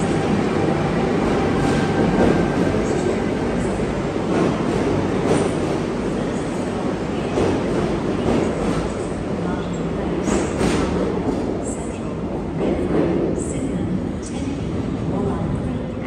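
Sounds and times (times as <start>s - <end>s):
train wheels rumbling on rail: 0.0s - 16.0s.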